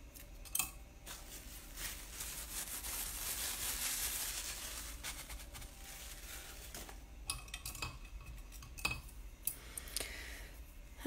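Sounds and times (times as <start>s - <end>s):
hand rubbing paper: 1.1s - 7.0s.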